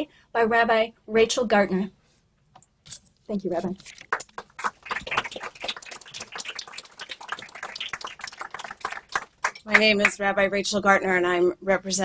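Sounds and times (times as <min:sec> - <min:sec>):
paper being handled: 0:02.9 - 0:05.5.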